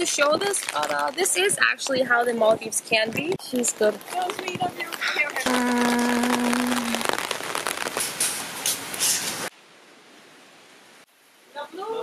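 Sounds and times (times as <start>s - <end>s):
heavy rain on wooden deck: 0.0s - 12.0s.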